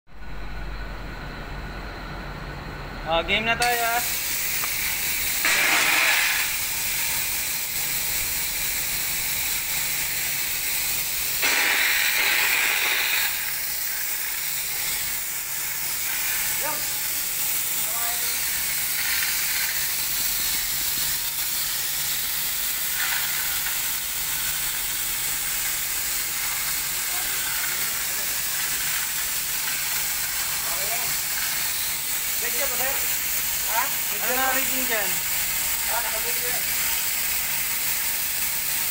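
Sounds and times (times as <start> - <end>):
sprinkler water spray hissing: 3.8 - 38.9.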